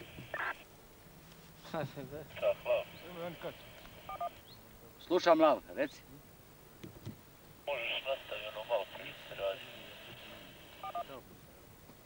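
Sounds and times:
high-pitched radio whine: 0:00.0 - 0:00.7, 0:02.2 - 0:04.4, 0:07.7 - 0:11.2
voice over two-way radio: 0:02.3 - 0:03.6, 0:07.7 - 0:11.2.

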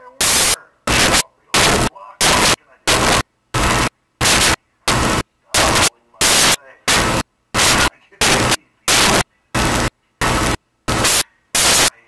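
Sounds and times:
static hiss bursts: 0:00.2 - 0:12.0.

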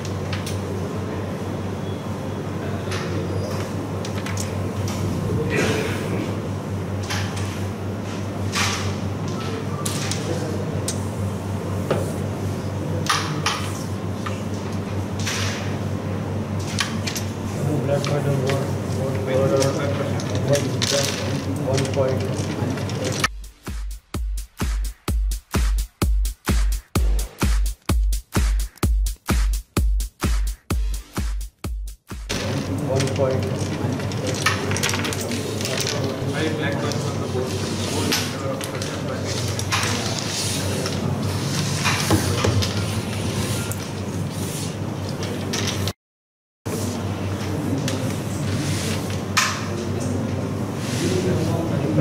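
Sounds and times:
carrom pieces clicking: 0:32.4 - 0:37.1.

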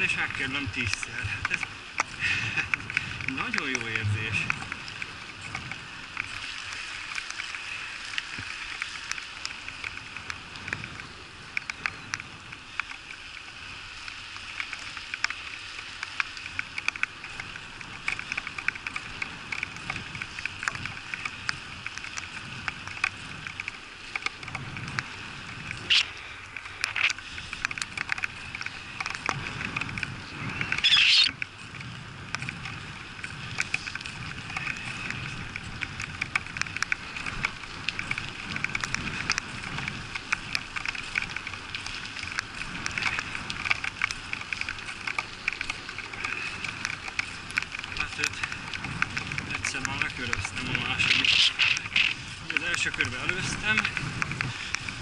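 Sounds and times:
bicycle tyres on wet road: 0:00.0 - 0:55.0
raindrops ticking on camera: 0:00.0 - 0:55.0
wind noise: 0:00.0 - 0:55.0.

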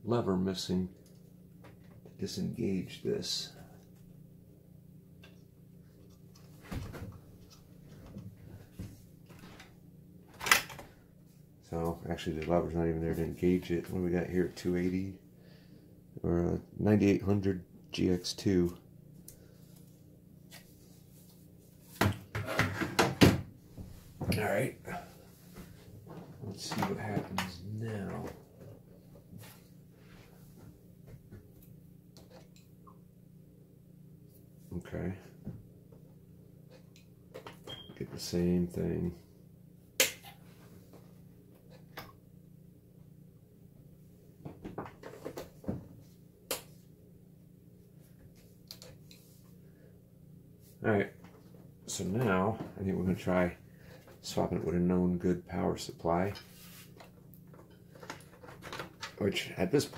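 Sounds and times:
computer low hum: 0:00.0 - 0:22.8, 0:23.6 - 0:59.9.

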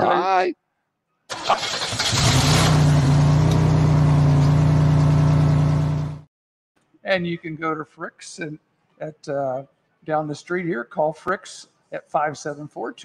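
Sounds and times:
car engine revving: 0:01.3 - 0:06.2.

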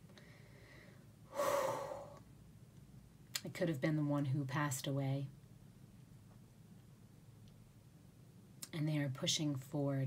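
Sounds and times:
person sharp intake of breath: 0:00.3 - 0:02.2.

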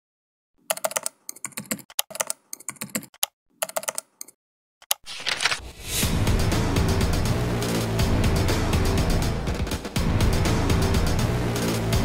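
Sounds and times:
computer keyboard typing: 0:00.6 - 0:05.6.

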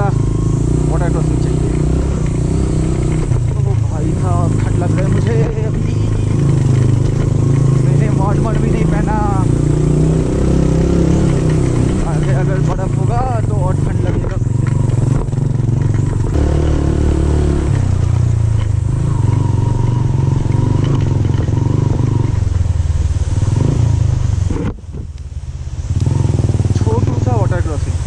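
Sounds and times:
motorcycle engine running: 0:00.0 - 0:28.0.

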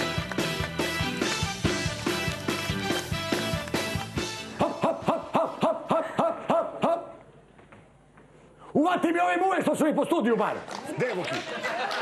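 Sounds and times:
man whooping: 0:04.6 - 0:07.2.

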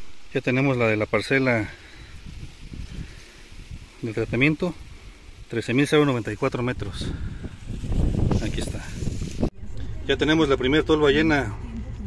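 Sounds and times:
faint outdoor hiss: 0:00.0 - 0:12.0
wind buffeting microphone: 0:01.8 - 0:05.6, 0:06.4 - 0:09.8.

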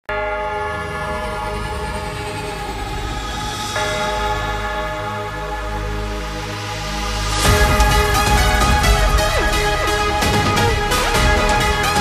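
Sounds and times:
held chord background music: 0:00.1 - 0:12.0.

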